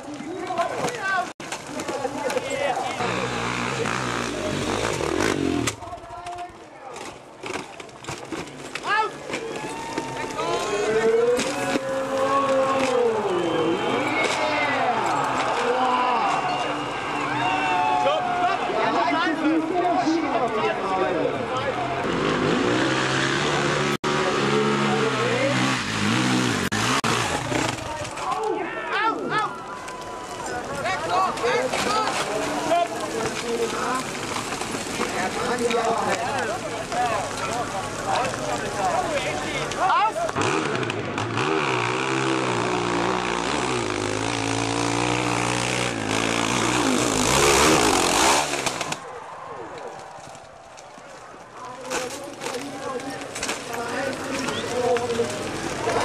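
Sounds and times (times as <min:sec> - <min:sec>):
dirt bike engine revving: 0:02.6 - 0:05.8, 0:22.0 - 0:28.0, 0:40.2 - 0:49.0.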